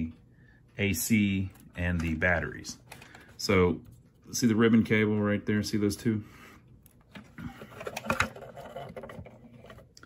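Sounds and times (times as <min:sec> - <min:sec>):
rustling and scraping: 0:07.1 - 0:10.0.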